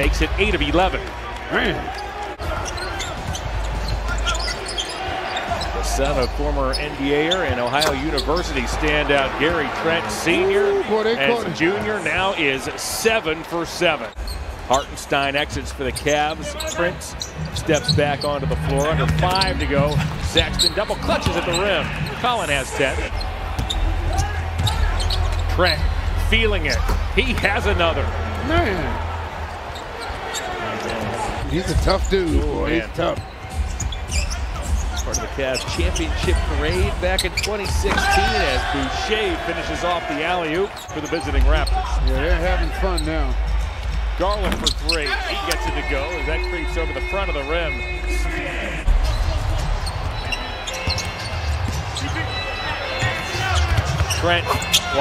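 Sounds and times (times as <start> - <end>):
low arena background: 0.0 - 55.0
sneakers squeaking on floor: 1.8 - 9.7, 14.1 - 22.4, 23.1 - 26.1, 29.4 - 39.0, 40.6 - 47.8, 49.0 - 55.0.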